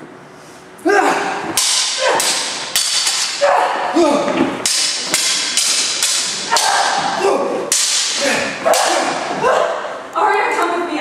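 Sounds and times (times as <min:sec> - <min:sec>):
swords clashing: 0:01.2 - 0:09.9.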